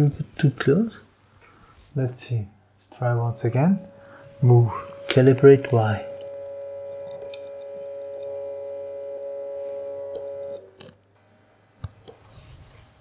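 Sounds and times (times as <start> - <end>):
stepper motor whine: 3.2 - 10.9.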